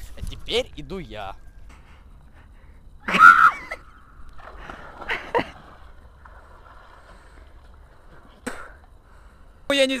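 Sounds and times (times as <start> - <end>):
water splashing around swimmer: 4.4 - 8.4.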